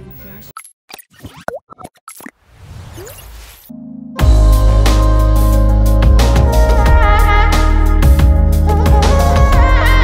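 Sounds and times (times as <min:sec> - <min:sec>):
cartoon plops and pops: 0:00.9 - 0:02.4
background music: 0:03.7 - 0:10.0.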